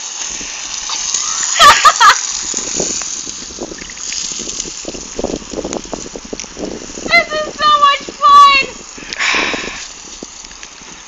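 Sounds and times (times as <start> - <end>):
garden hose spraying water: 0.0 - 11.0
water splattering on wet dirt: 0.0 - 11.0.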